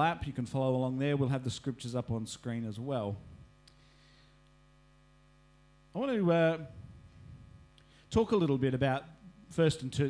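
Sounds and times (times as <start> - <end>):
faint mains hum: 0.0 - 10.0
man's voice: 8.1 - 10.0.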